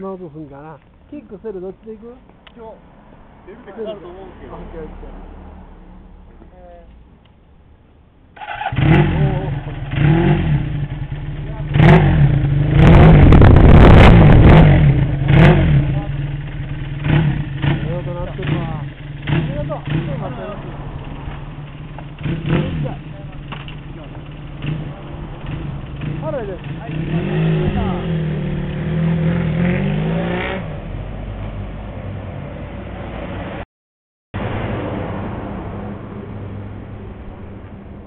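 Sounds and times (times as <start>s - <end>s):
motorcycle engine revving: 8.4s - 31.4s.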